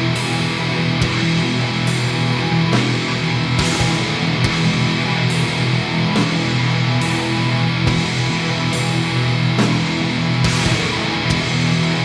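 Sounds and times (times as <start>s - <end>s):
distorted electric guitar droning: 0.0s - 12.0s
sharp guitar hits: 0.0s - 12.0s.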